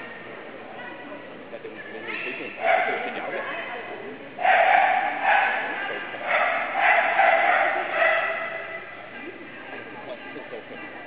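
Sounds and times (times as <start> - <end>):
dog barking: 2.6 - 3.2, 4.4 - 9.0.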